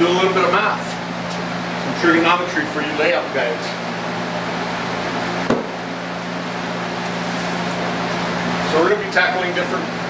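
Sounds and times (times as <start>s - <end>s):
fan hum: 0.0s - 10.0s.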